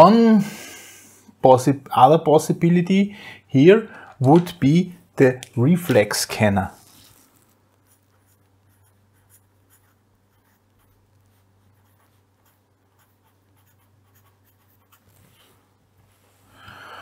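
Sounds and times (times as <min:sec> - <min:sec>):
pen scratching on paper: 0:07.8 - 0:15.5.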